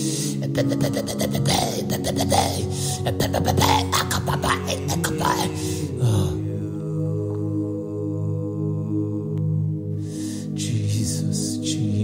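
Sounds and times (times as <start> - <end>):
man praying rapidly: 0.0 - 6.8
ambient pad of held low chords: 0.0 - 12.0.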